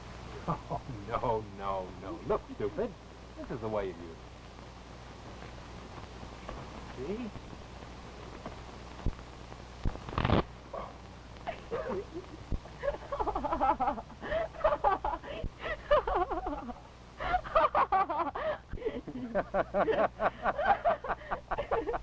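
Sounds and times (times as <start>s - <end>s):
woman laughing: 11.4s - 22.0s.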